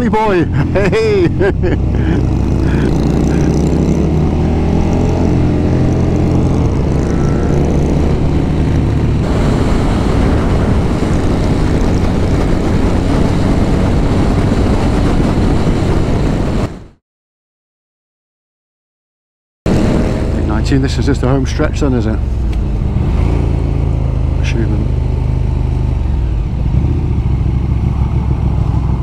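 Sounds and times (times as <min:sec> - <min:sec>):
motorcycle engine accelerating: 0:00.0 - 0:16.9, 0:19.7 - 0:29.0
road noise: 0:00.0 - 0:17.0, 0:19.7 - 0:29.0
wind rushing over microphone: 0:00.0 - 0:17.0, 0:19.7 - 0:29.0.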